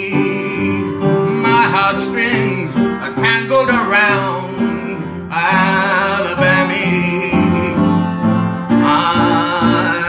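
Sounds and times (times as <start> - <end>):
man singing: 0.0 - 10.0
upright piano accompaniment: 0.0 - 10.0.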